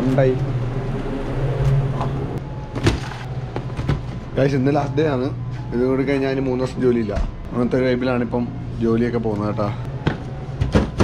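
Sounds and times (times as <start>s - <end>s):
refrigeration hum: 0.0s - 11.0s.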